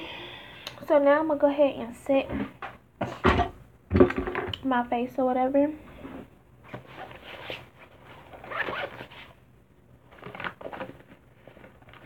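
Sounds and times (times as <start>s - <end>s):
scratchy rustles and scrapes: 6.0s - 9.4s, 10.1s - 12.0s.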